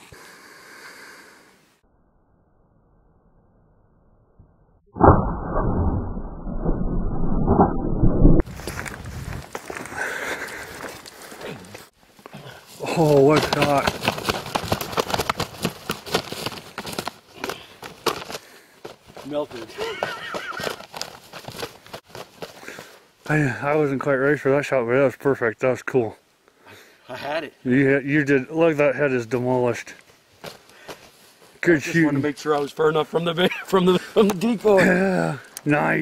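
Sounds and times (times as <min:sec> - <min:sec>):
feather rustles: 0:12.6 - 0:22.8
turkey wings flapping: 0:12.8 - 0:23.0.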